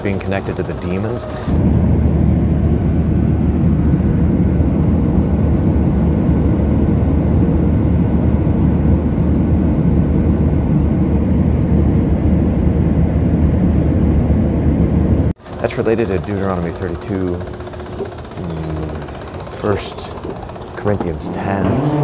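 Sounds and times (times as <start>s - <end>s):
airliner cabin noise: 0.0s - 21.8s.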